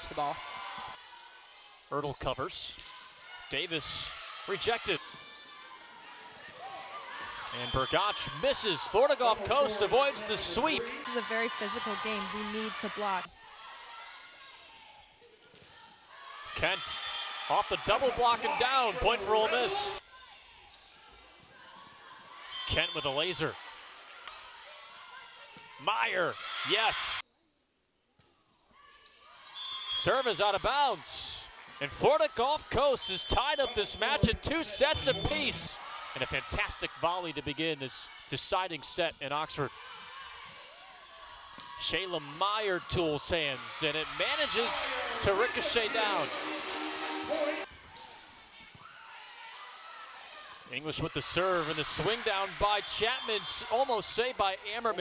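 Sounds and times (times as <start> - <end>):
indoor arena crowd hiss: 5.7 - 14.9, 16.1 - 20.1, 22.3 - 27.2, 29.5 - 55.0.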